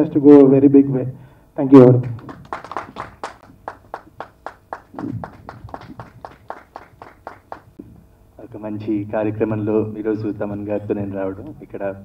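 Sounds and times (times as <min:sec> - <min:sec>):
hand clapping: 0:02.0 - 0:07.8.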